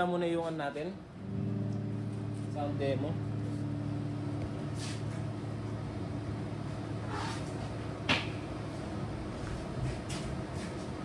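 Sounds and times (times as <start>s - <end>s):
guitar amplifier hum: 0.0s - 11.0s.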